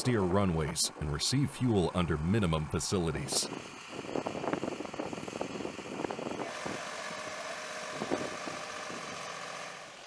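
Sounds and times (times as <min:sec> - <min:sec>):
engine running with thin whine: 0:00.0 - 0:10.0.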